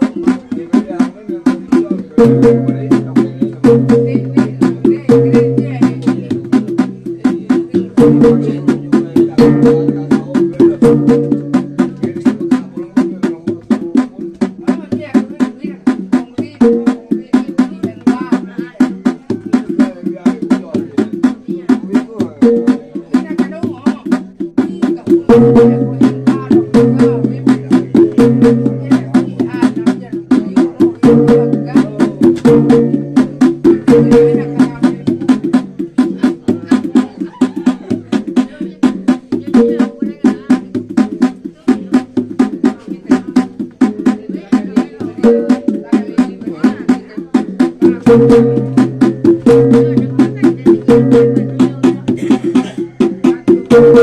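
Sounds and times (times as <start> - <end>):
rapid drum strokes: 0.0 - 54.0.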